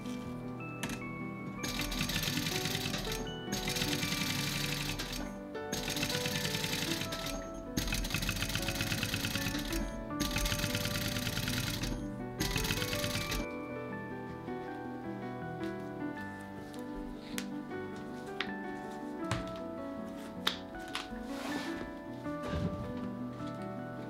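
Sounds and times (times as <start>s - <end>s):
background music: 0.0s - 24.0s
sewing machine stitching: 1.6s - 13.5s.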